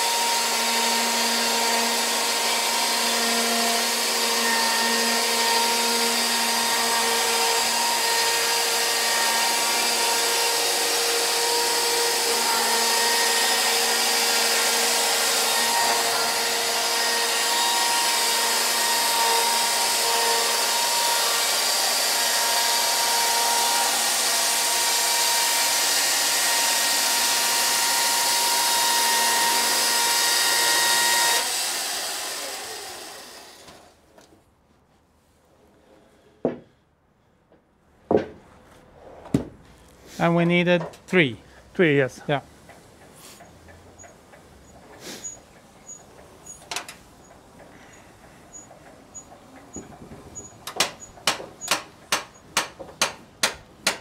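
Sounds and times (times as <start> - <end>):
electric chainsaw cutting wood: 0.0 - 34.0.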